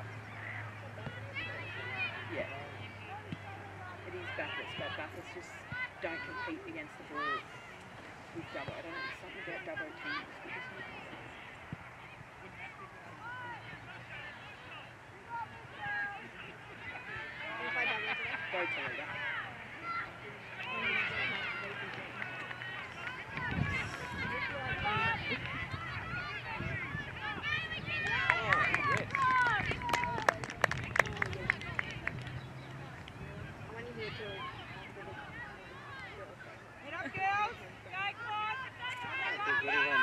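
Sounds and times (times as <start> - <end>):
voices calling across a field: 0.0 - 40.0.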